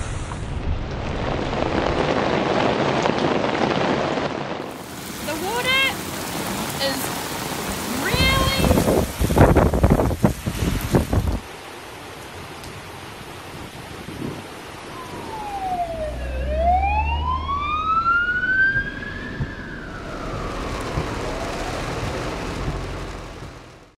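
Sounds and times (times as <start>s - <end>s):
heavy rain on pavement: 0.0s - 16.4s, 18.6s - 24.0s
traffic rumble: 4.7s - 11.4s, 14.8s - 24.0s
fire engine siren wailing: 14.7s - 23.2s.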